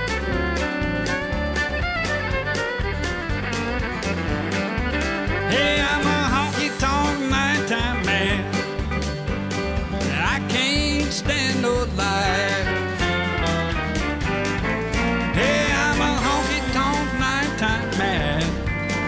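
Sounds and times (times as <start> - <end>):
fiddle sliding notes: 0.0 - 10.8
acoustic guitars strumming: 0.0 - 19.0
steady bass beat: 0.0 - 19.0.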